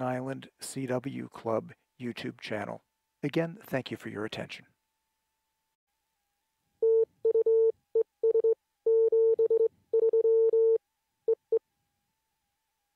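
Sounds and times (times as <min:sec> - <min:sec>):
morse code beeps: 0:06.8 - 0:11.4.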